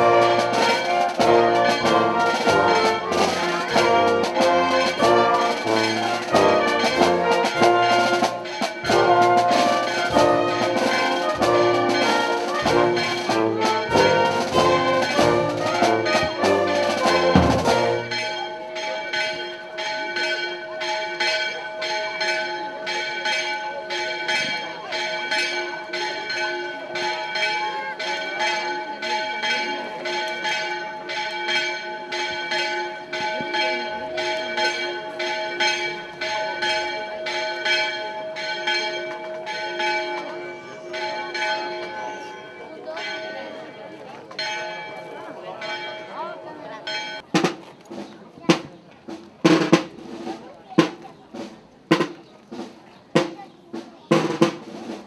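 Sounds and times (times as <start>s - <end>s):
brass band with drums: 0.0s - 19.6s, 46.8s - 55.0s
church bells ringing: 0.0s - 47.3s.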